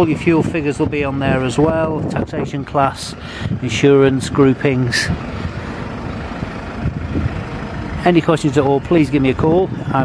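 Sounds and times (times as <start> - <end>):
low vehicle rumble: 0.0 - 10.0.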